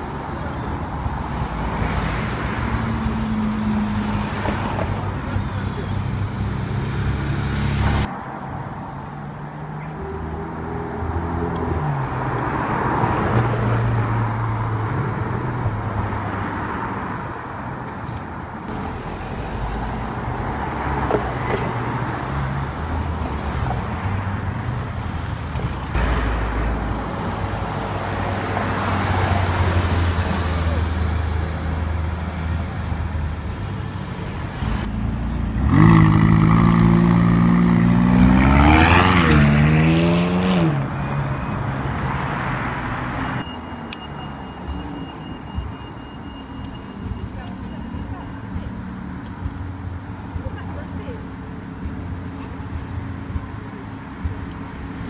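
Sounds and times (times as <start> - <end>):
sports car engines: 0.0 - 55.0
street traffic: 0.0 - 55.0
engine revving: 34.8 - 41.0.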